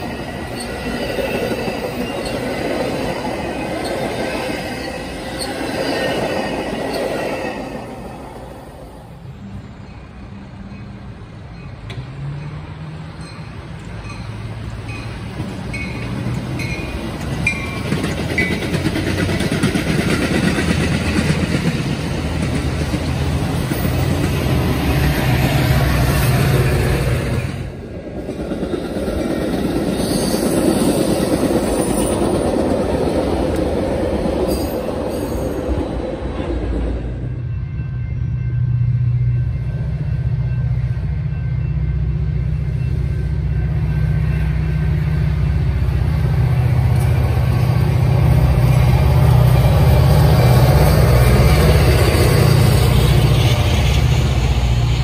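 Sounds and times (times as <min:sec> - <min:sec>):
diesel locomotive engine hum: 0:00.0 - 0:55.0
train wheels rumbling on rails: 0:00.0 - 0:55.0.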